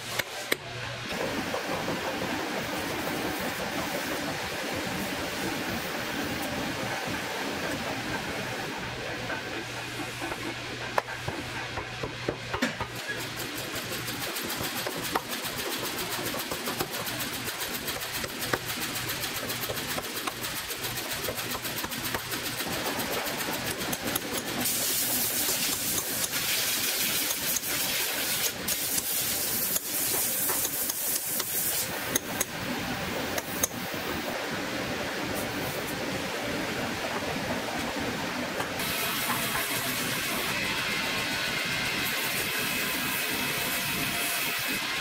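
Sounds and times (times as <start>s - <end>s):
workshop noise: 0.0s - 45.0s
loud hiss: 24.4s - 32.2s.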